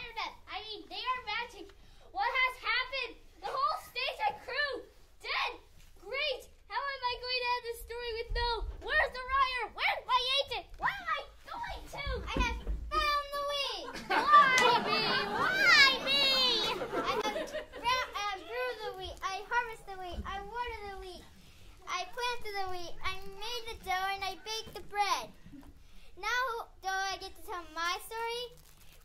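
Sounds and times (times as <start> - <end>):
children speaking: 0.0 - 28.6
swooping child exclamation: 10.8 - 19.2.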